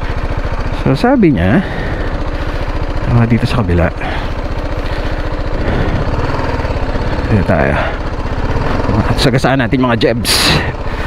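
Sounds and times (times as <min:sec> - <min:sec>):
motorcycle engine running slowly: 0:00.0 - 0:11.0.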